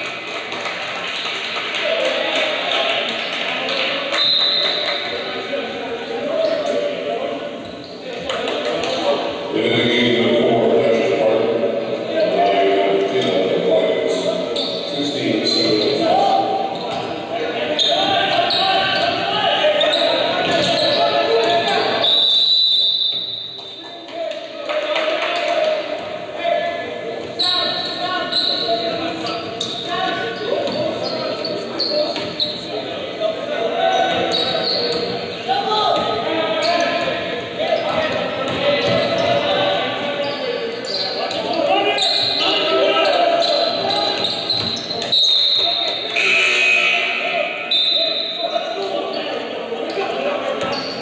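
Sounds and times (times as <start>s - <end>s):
indistinct crowd chatter: 0.0s - 51.0s.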